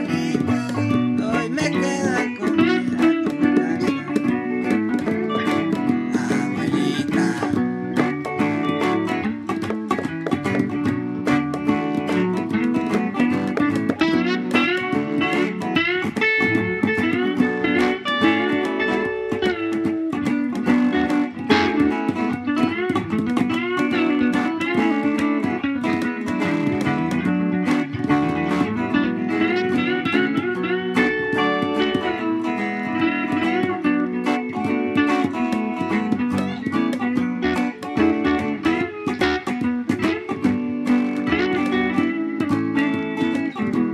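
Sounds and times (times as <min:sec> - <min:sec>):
plucked guitar quick runs: 0:00.0 - 0:43.9.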